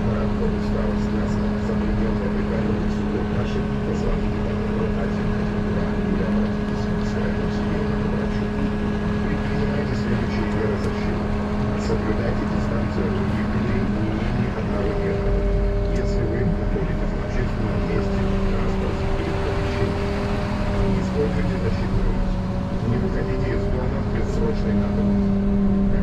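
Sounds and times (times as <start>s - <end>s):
electric drive hum: 0.0s - 26.0s.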